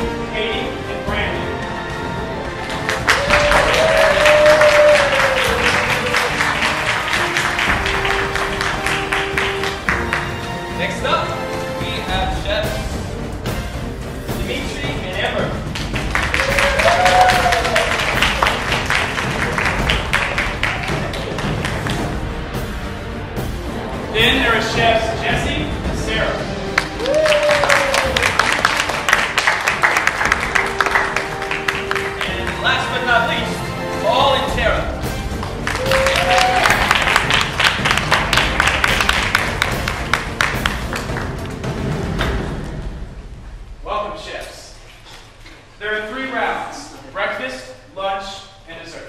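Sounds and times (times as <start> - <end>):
audience clapping: 2.2 - 10.8, 15.1 - 22.6, 26.7 - 34.0, 35.0 - 42.4
short cheer: 3.0 - 6.8, 16.3 - 18.6, 26.8 - 28.6, 35.6 - 37.2.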